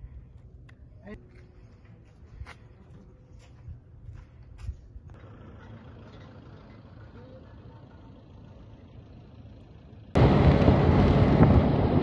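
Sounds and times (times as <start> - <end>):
faint outdoor noise: 0.0 - 12.0
vehicle engine and road noise: 0.0 - 12.0
wind rushing over microphone: 10.2 - 12.0.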